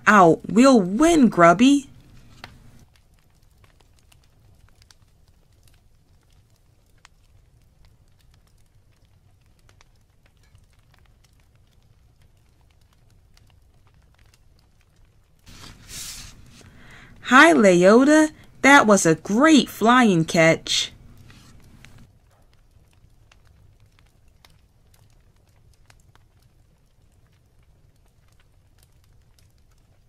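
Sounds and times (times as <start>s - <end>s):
low steady hum: 0.0s - 2.8s, 15.5s - 22.1s
paper page turning: 15.5s - 16.8s.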